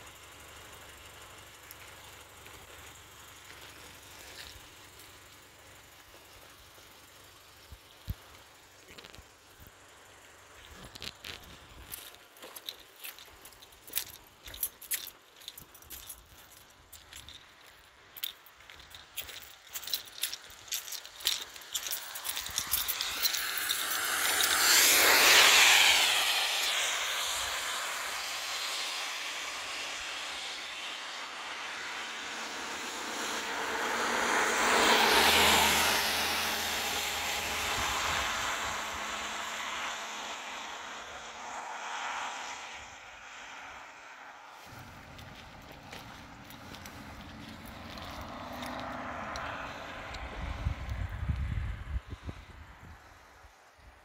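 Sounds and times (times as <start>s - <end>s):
tyres hissing on wet road: 0.0s - 14.5s, 20.3s - 50.7s.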